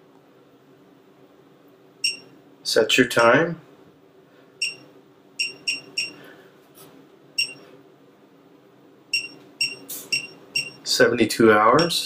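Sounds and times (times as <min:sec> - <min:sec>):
faint steady hum: 0:00.0 - 0:12.0
short high beeps: 0:02.0 - 0:02.3, 0:05.4 - 0:06.2, 0:07.4 - 0:07.6, 0:09.2 - 0:10.8.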